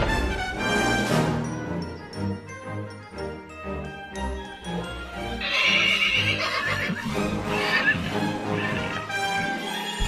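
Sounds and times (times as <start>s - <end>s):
background music: 0.0s - 10.0s
horse neighing: 5.4s - 9.2s.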